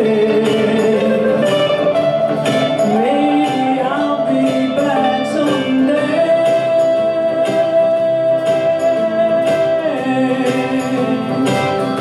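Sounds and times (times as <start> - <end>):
pop song with singing and band: 0.0 - 12.0.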